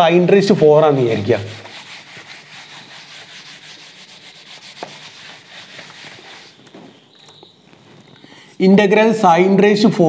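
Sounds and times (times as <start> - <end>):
duster rubbing on whiteboard: 0.3 - 7.2.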